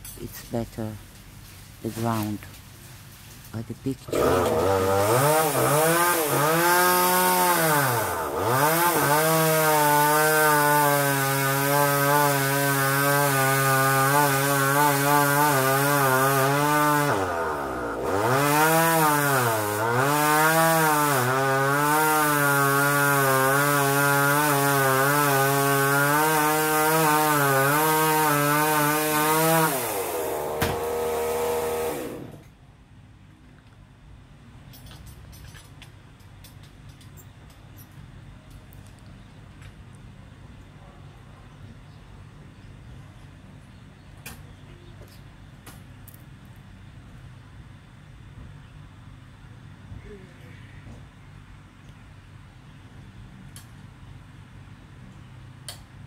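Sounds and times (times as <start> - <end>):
chainsaw cutting tree: 4.1 - 32.5.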